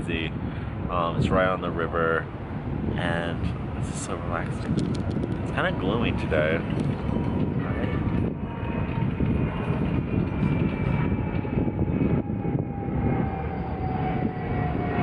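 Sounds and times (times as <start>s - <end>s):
aircraft engine whine passing overhead: 0.0s - 15.0s
steady low rumble: 0.0s - 15.0s.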